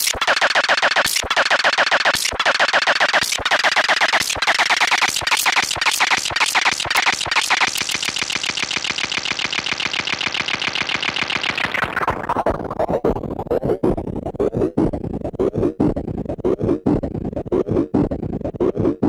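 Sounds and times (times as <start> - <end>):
glitchy synthesizer delay stutter: 0.0 - 19.0.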